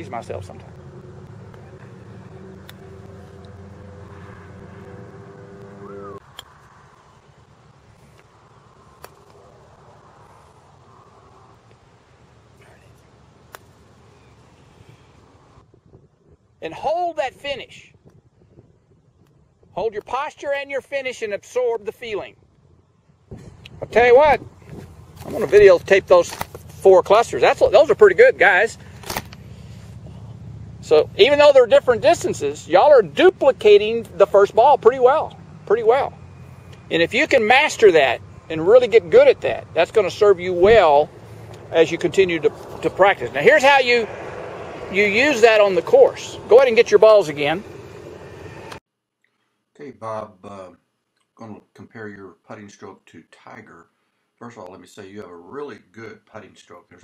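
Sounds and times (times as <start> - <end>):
low engine drone: 0.0 - 15.7, 27.6 - 48.8
low steady background noise: 0.0 - 57.0
putters striking golf balls: 0.6 - 3.8, 13.4 - 14.0.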